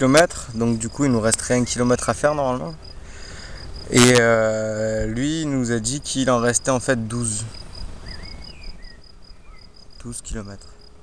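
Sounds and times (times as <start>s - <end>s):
faint bird chirps: 0.0s - 4.1s, 5.4s - 11.0s
cricket chirping: 0.0s - 11.0s.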